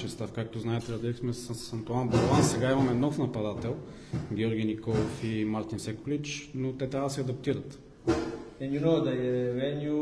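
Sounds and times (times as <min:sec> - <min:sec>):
knock: 0:02.1 - 0:05.3, 0:08.0 - 0:08.5.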